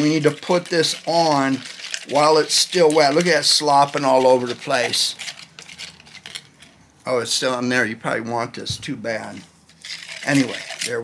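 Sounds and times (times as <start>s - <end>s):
utensil stirring wet mud: 0.0s - 6.4s, 9.2s - 11.0s.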